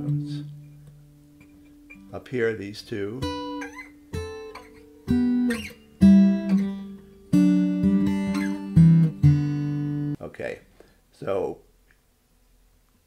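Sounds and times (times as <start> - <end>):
acoustic guitar fingerpicking: 0.0 - 2.2, 3.2 - 10.2
guitar string slide: 3.5 - 10.2.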